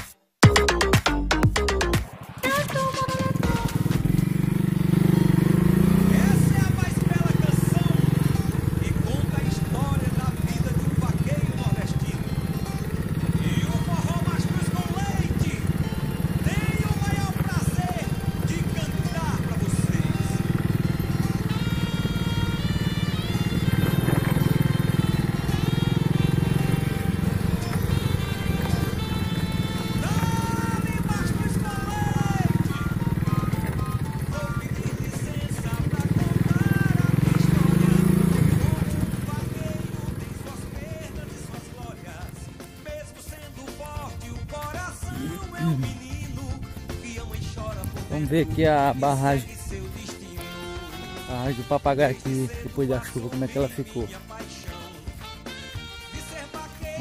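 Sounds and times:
song with singing: 0:00.4 - 0:04.6, 0:05.7 - 0:51.5, 0:52.2 - 0:57.0
motorcycle engine running: 0:02.1 - 0:57.0.

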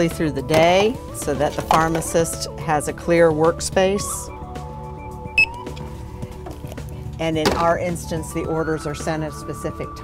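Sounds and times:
background music: 0:00.0 - 0:10.0
barcode scanner beep: 0:05.4 - 0:05.6.

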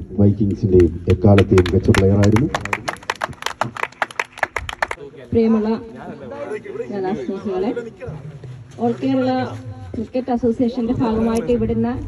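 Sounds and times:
people clapping: 0:00.5 - 0:05.0.

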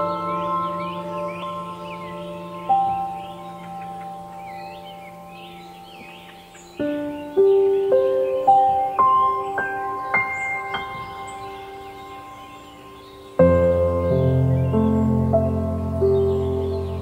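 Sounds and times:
slow ringing bell-like notes: 0:00.0 - 0:07.2
birds chirping: 0:00.0 - 0:17.0.

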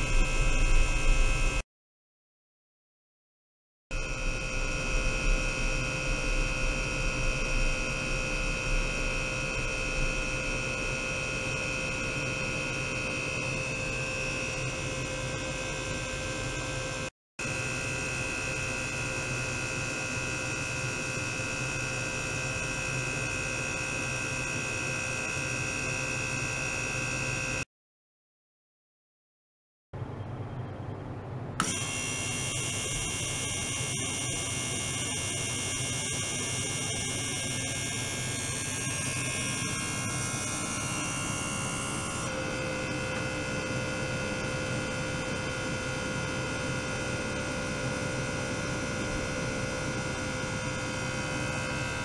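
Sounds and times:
electric water pump humming: 0:00.0 - 0:01.6, 0:03.9 - 0:27.7, 0:31.3 - 0:52.0.

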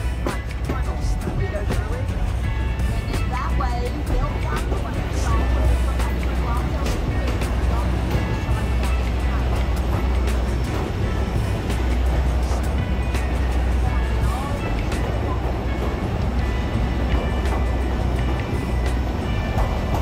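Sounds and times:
background music with vocals: 0:00.0 - 0:20.0
train rumbling in a tunnel: 0:00.0 - 0:20.0
train wheels clicking: 0:00.0 - 0:20.0.

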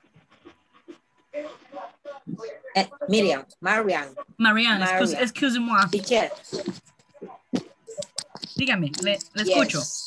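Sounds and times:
person speaking over video call: 0:01.4 - 0:10.0.

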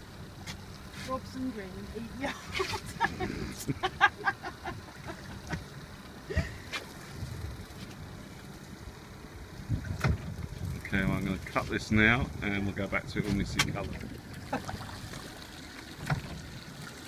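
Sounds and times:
person laughing: 0:02.2 - 0:05.5
wind on microphone: 0:02.5 - 0:03.8, 0:09.6 - 0:14.9.

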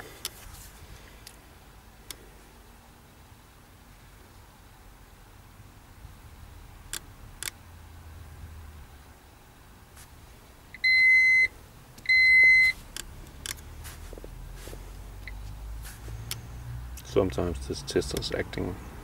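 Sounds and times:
high-pitched beeps: 0:12.1 - 0:12.8
sharp clicks: 0:12.9 - 0:13.7, 0:16.2 - 0:17.1.

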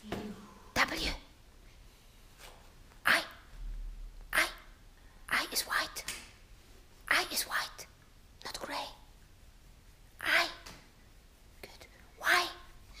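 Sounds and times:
person whispering: 0:00.3 - 0:01.3, 0:05.2 - 0:06.1, 0:07.0 - 0:09.1, 0:10.2 - 0:10.6, 0:11.6 - 0:13.0.

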